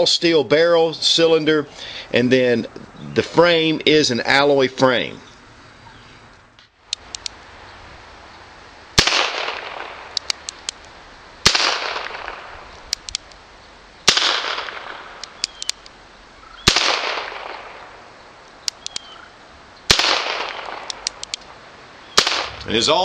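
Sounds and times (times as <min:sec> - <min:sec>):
revolver hammer cocking clicks: 0:06.9 - 0:07.4, 0:10.1 - 0:10.9, 0:12.0 - 0:13.4, 0:15.2 - 0:16.0, 0:18.6 - 0:19.1, 0:20.0 - 0:21.5.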